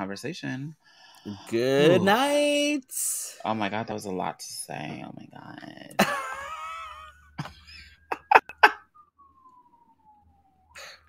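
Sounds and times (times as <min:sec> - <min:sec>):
person's high wavering vocal: 0:01.5 - 0:02.8.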